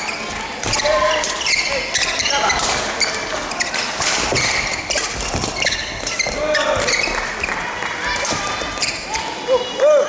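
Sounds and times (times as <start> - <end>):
shoes squeaking on court: 0.0 - 9.3.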